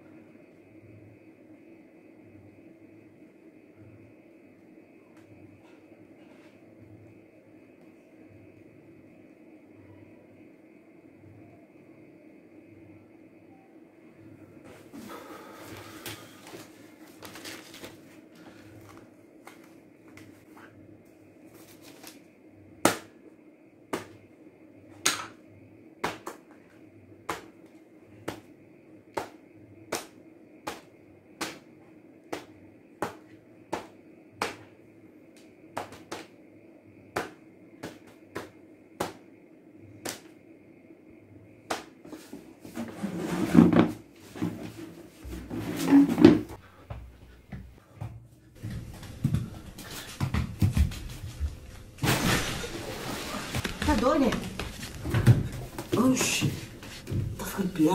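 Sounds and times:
faint steady hum: 0.0 - 57.9.

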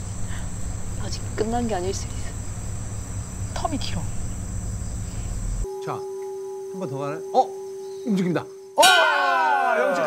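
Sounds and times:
low outdoor rumble: 0.0 - 5.7
steady low tone: 0.0 - 8.8
insects trilling: 0.0 - 10.0.

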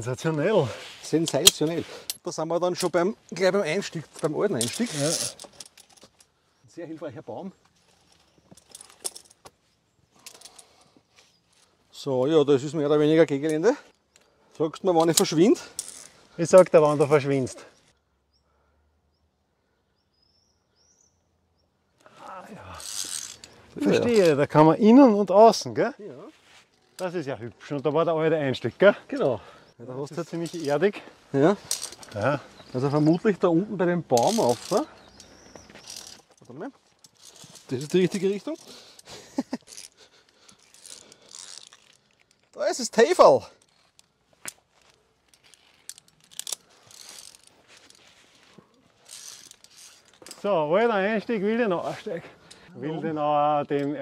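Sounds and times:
carabiners clinking on steel cable: 0.2 - 6.4, 7.6 - 11.8, 12.6 - 18.0, 22.0 - 25.7, 26.7 - 51.3
climbing gear clicking: 1.1 - 6.3, 7.6 - 11.7, 22.0 - 24.4, 28.8 - 33.5, 34.1 - 50.5
faint bird chirps: 18.0 - 22.7
soft rustling: 26.1 - 27.3, 43.4 - 52.7.

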